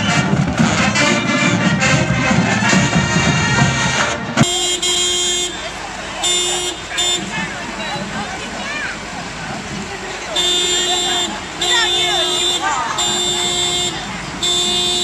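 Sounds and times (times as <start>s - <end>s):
vehicle horn: 0.0s - 8.1s, 10.3s - 15.0s
marching band playing: 0.0s - 15.0s.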